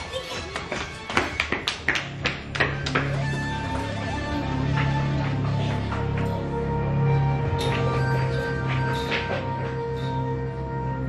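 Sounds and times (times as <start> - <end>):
running footsteps on pavement: 0.1 - 6.4
music with steady low note: 2.0 - 11.0.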